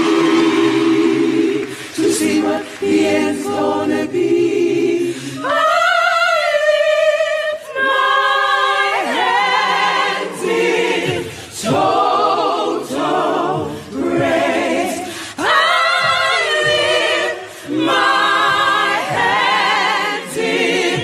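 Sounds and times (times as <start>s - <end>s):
gospel choir singing a cappella: 0.0s - 21.0s.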